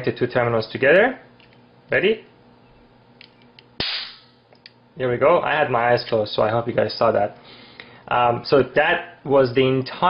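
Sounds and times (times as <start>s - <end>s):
capacitor spark crack: 3.8s - 4.4s.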